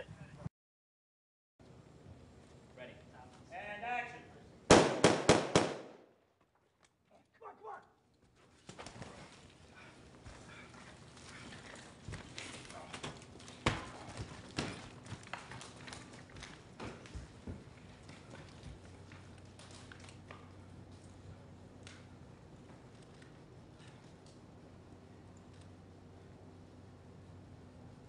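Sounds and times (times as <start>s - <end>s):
loud sharp bangs: 4.7s - 6.1s.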